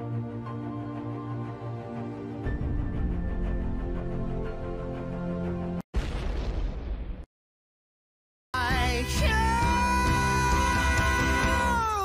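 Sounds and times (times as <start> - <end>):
man singing a long high note: 8.6 - 12.0.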